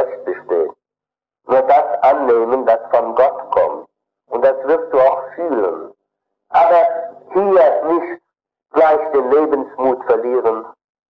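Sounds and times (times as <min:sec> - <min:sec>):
man lecturing: 0:00.0 - 0:00.8, 0:01.5 - 0:10.8.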